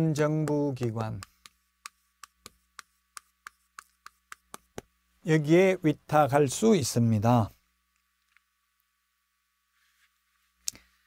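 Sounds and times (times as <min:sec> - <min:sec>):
chalk tapping on chalkboard: 0:00.4 - 0:04.9.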